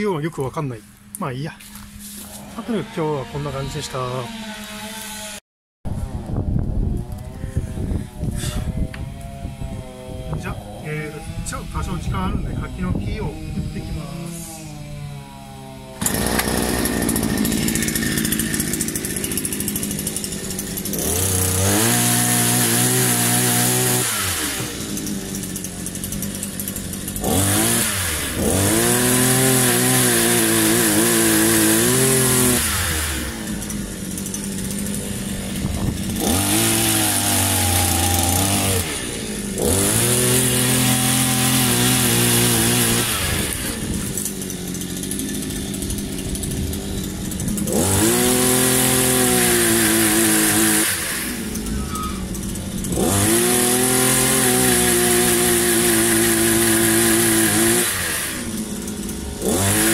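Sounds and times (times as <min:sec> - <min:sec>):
pole chainsaw motor revving: 0:01.7 - 0:59.9.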